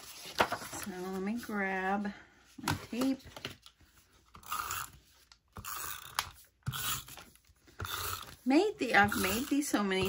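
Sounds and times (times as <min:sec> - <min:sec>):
paper rustling: 0:00.0 - 0:01.7.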